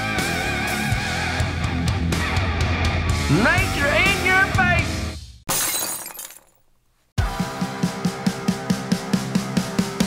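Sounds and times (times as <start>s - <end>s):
glass shattering: 5.5s - 6.7s.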